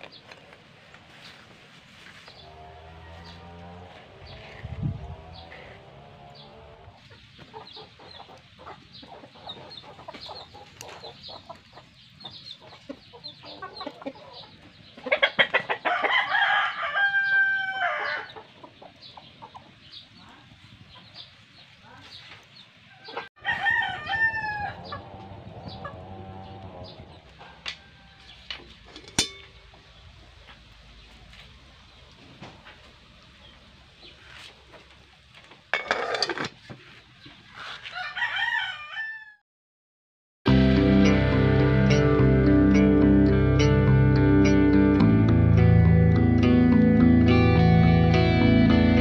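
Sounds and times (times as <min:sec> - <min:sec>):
rooster crowing: 0:02.6 - 0:04.0, 0:15.8 - 0:18.3, 0:23.0 - 0:26.7, 0:27.4 - 0:28.4, 0:37.8 - 0:39.4.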